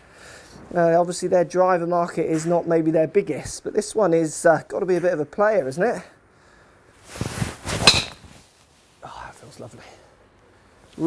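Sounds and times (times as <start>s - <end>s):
golf club swing whoosh: 7.1s - 8.4s
golf club striking ball: 7.8s - 8.2s.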